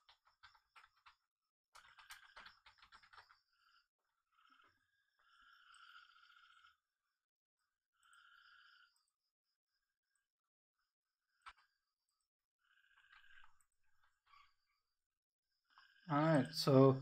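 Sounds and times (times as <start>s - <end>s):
keyboard typing: 0.0s - 3.4s.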